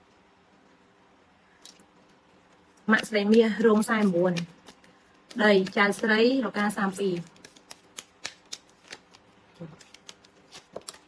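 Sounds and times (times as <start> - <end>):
cards clicking and snapping: 3.0 - 6.1, 7.2 - 11.0.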